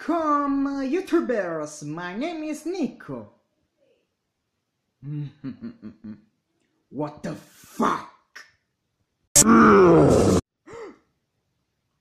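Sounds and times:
cartoon growl: 0:09.4 - 0:10.9
gasp-like voice: 0:09.4 - 0:11.0.

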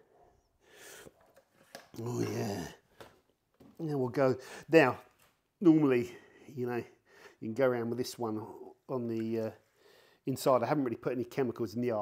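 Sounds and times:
soft breath near microphone: 0:00.0 - 0:01.3, 0:09.6 - 0:10.3.

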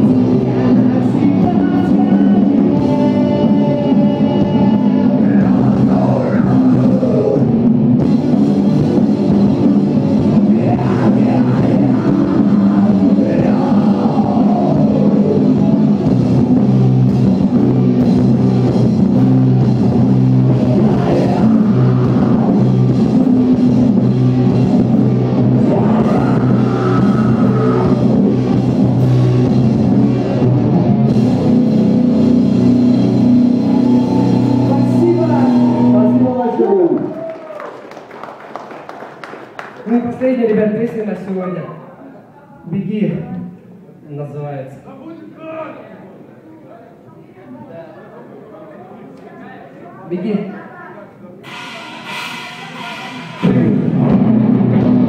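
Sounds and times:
person singing: 0:00.0 - 0:07.7, 0:10.3 - 0:16.6, 0:20.0 - 0:23.6, 0:25.3 - 0:28.6, 0:33.6 - 0:36.3
drum kit: 0:00.0 - 0:36.3, 0:51.4 - 0:55.0
electric guitars: 0:00.0 - 0:37.2, 0:51.4 - 0:55.0.

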